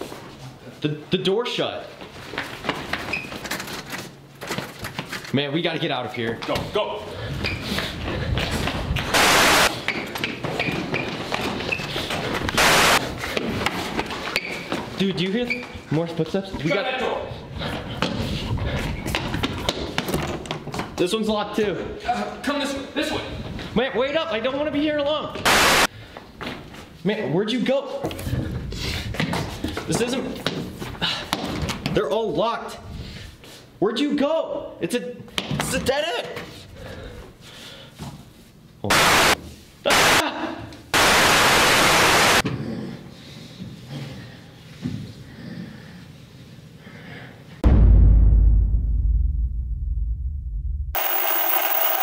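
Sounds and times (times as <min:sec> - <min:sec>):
hurried footsteps on hard floor: 0:17.6 - 0:21.0.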